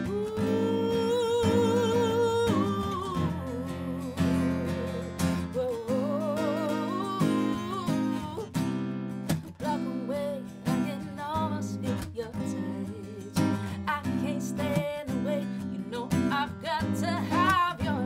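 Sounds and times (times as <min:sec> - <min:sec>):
woman singing: 0:00.0 - 0:08.7, 0:09.5 - 0:18.0
acoustic guitar strumming: 0:00.0 - 0:18.0.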